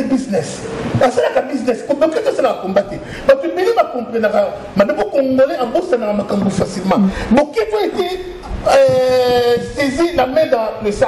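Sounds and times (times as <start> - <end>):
person talking: 0.0 - 11.0.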